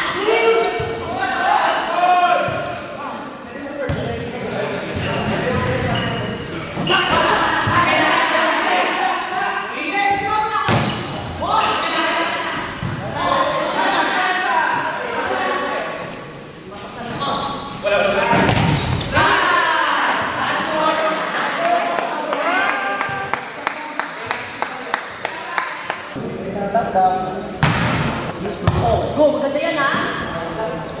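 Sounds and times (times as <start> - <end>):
people shouting in a gymnasium: 0.0 - 3.6, 5.0 - 16.1, 17.1 - 23.4.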